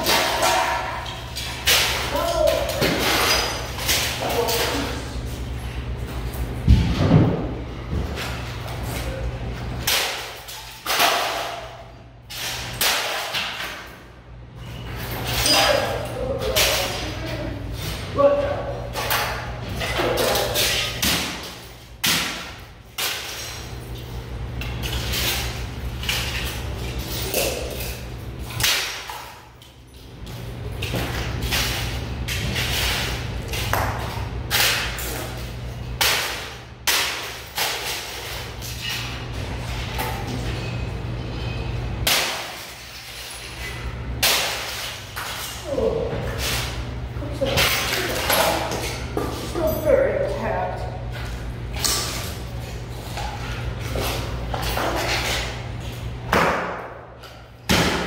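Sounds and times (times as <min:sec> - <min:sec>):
steady low hum: 0:00.0 - 0:58.0
sledgehammer smashing plastic: 0:42.0 - 0:43.3, 0:44.2 - 0:45.5, 0:57.7 - 0:58.0.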